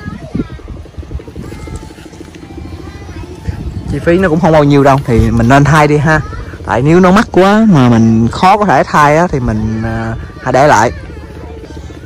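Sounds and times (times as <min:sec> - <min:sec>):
faint voices: 0:00.0 - 0:12.0
pulsing engine rumble: 0:00.0 - 0:12.0.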